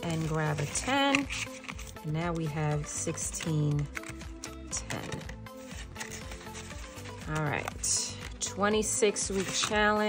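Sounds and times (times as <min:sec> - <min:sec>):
paper pages rustling and clicking: 0:00.0 - 0:02.5, 0:03.2 - 0:08.4, 0:09.1 - 0:10.0
soft background music: 0:00.0 - 0:10.0.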